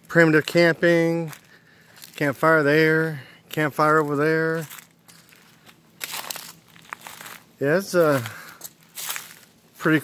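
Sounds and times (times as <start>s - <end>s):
footsteps crunching on dry leaves: 0.1s - 10.0s.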